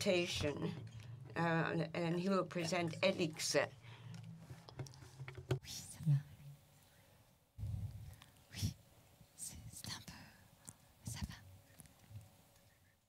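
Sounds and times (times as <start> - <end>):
quiet indistinct voices and whispering: 5.6 - 13.0.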